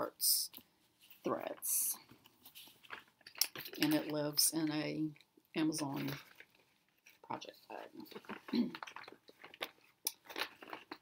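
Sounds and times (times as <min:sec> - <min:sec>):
plastic bag rustling: 0:00.9 - 0:04.5, 0:05.8 - 0:11.0
person speaking: 0:01.2 - 0:02.1, 0:03.4 - 0:06.3, 0:07.2 - 0:08.9.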